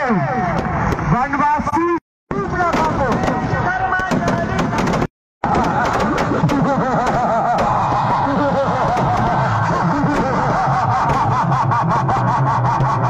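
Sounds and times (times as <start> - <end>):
firecrackers crackling: 2.6 - 11.6.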